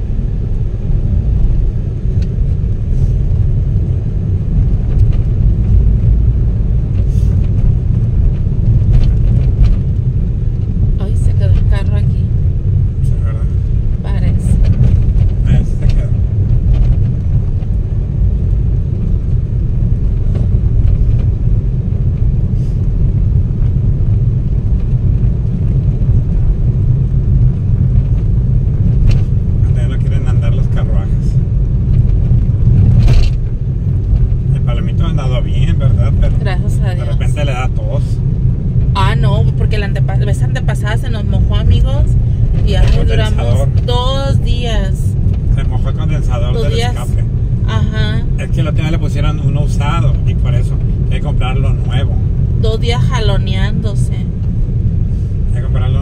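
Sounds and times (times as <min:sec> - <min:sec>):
car driving at low speed: 0:00.0 - 0:56.0.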